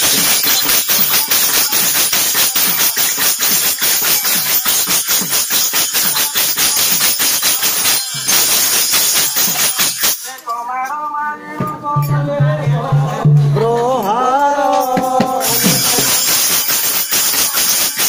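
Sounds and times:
jingling metal percussion: 0.0 - 11.0, 12.0 - 18.0.

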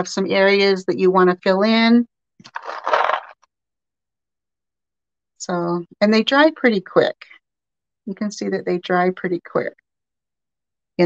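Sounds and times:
bowl of beads scraping on paper: 2.4 - 3.4.

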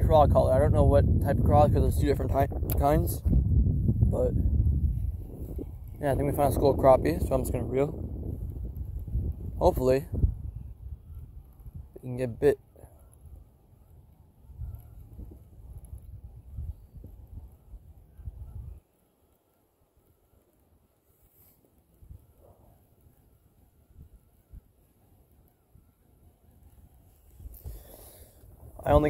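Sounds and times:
wind buffeting microphone: 0.0 - 18.9, 26.8 - 29.0
faint outdoor background: 0.0 - 29.0.

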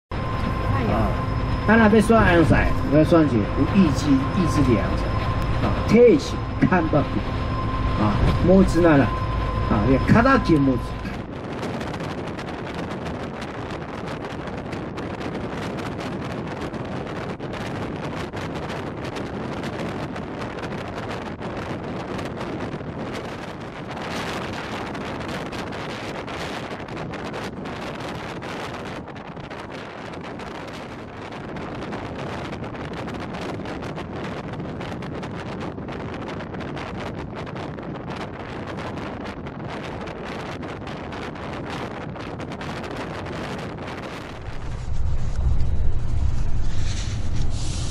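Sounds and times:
tyre and wind noise inside vehicle: 0.1 - 47.9.

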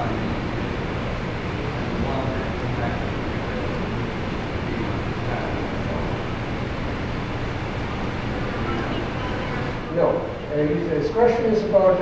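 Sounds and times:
room noise and hiss: 0.0 - 12.0.

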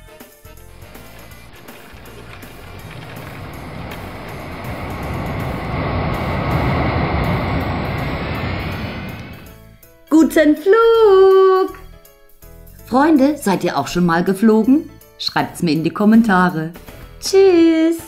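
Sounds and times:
jet airliner taking off: 0.7 - 9.8.

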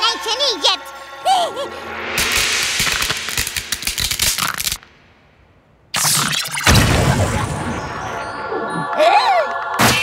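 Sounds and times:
cartoon crackles and snaps: 2.2 - 4.9, 5.9 - 6.8.

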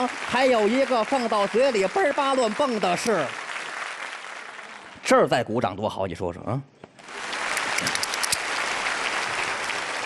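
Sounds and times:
audience applauding: 0.0 - 5.0, 7.0 - 10.0.

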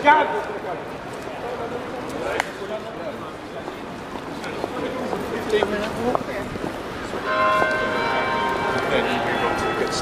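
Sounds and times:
bell ringing: 7.2 - 10.0.

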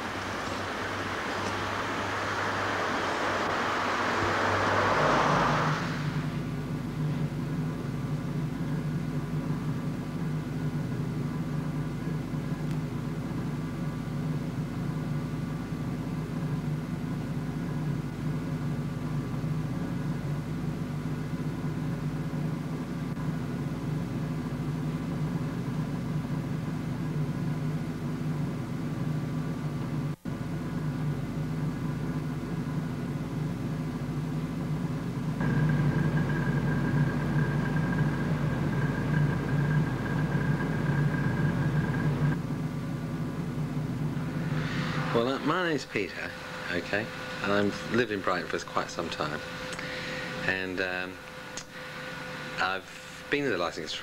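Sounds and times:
low hum of held tones: 0.0 - 54.0.

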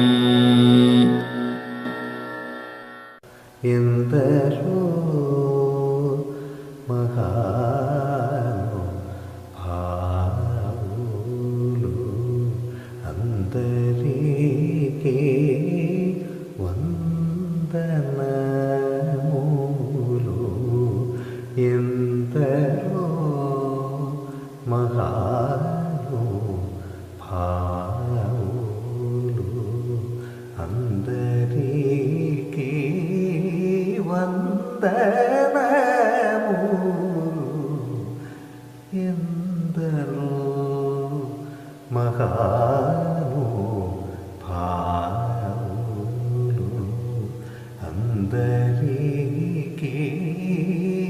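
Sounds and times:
man singing long held notes: 0.0 - 2.6, 3.2 - 51.0.

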